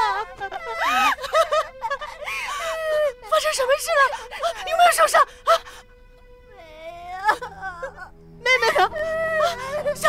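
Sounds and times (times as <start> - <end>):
woman wailing and sobbing: 0.0 - 5.8, 6.6 - 10.0.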